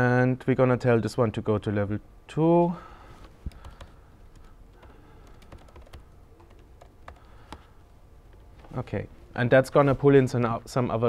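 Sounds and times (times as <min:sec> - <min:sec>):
laptop keyboard clicks: 0:03.5 - 0:07.7.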